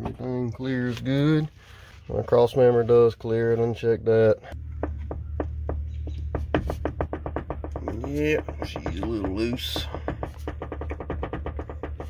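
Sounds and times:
metal joint clicking and knocking: 0:04.5 - 0:12.0.

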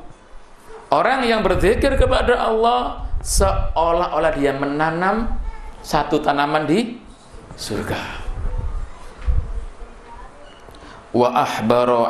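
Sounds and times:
microphone handling thuds: 0:03.0 - 0:04.1, 0:07.3 - 0:10.0.

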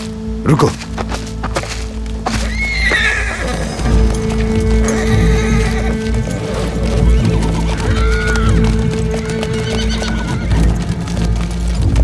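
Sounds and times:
dramatic music drone: 0:00.0 - 0:12.0
hooves clopping: 0:00.0 - 0:12.0
horse whinnying: 0:02.4 - 0:03.9, 0:04.7 - 0:08.7, 0:09.6 - 0:10.6.

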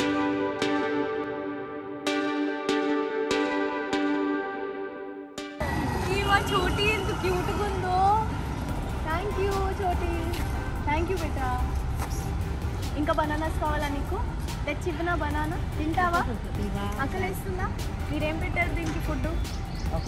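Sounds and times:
music: 0:00.0 - 0:20.0.

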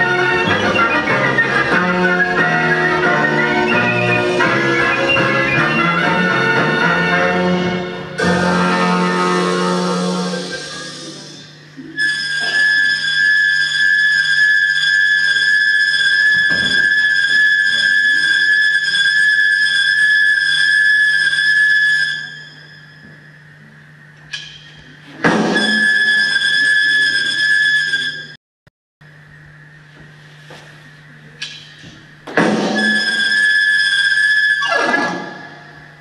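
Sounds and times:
high-pitched whistling tone: 0:00.0 - 0:05.8, 0:10.3 - 0:23.7, 0:24.4 - 0:28.4, 0:32.6 - 0:36.0.

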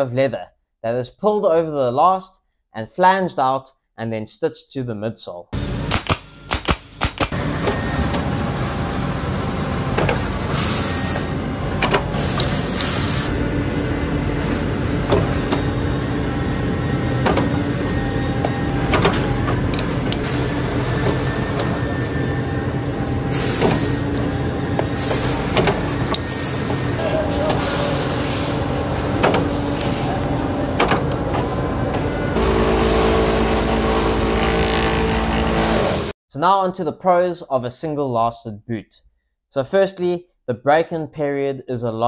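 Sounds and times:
pneumatic tacker shots: 0:05.6 - 0:07.8, 0:23.3 - 0:24.2, 0:24.8 - 0:36.1
machine humming: 0:07.4 - 0:36.1
compressed air hissing: 0:10.5 - 0:11.3, 0:12.2 - 0:13.3, 0:23.3 - 0:24.1, 0:24.9 - 0:36.1.

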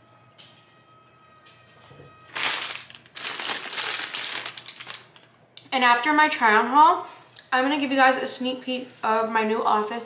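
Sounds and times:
food packaging crinkling: 0:02.3 - 0:05.3.

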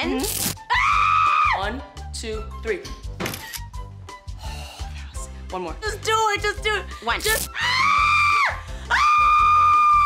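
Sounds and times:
wax strip ripping: 0:00.2 - 0:00.6.

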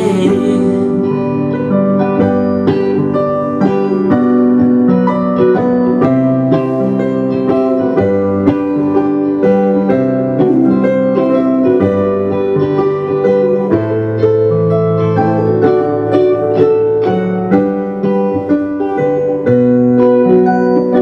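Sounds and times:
keyboard playing piano chords: 0:00.0 - 0:21.0.

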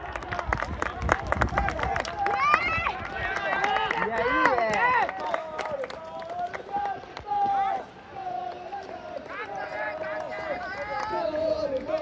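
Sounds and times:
people shouting outdoors: 0:02.0 - 0:12.0.

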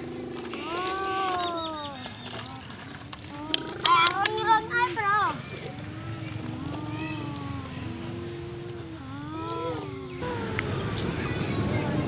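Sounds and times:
young child humming without words: 0:00.0 - 0:11.2.

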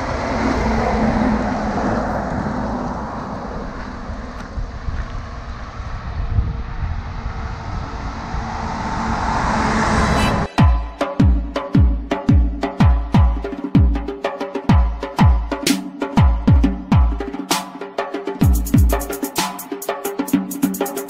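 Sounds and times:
low hum: 0:00.0 - 0:10.6
motor vehicle rush: 0:00.0 - 0:10.6.

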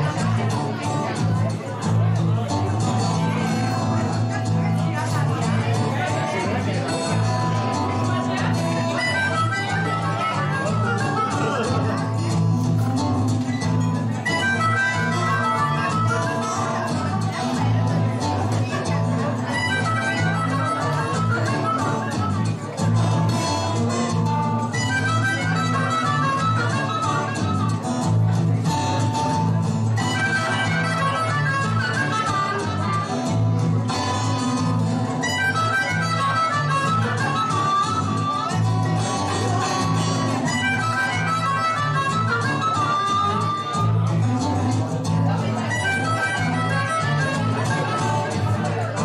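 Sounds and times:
bass line: 0:00.0 - 0:49.0
blues band playing: 0:00.0 - 0:49.0
guitar backing: 0:00.0 - 0:49.0
amplified harmonica wailing: 0:08.8 - 0:12.0, 0:14.2 - 0:16.7, 0:19.5 - 0:22.5, 0:24.7 - 0:27.8, 0:30.0 - 0:33.2, 0:35.2 - 0:44.0, 0:45.6 - 0:48.4.

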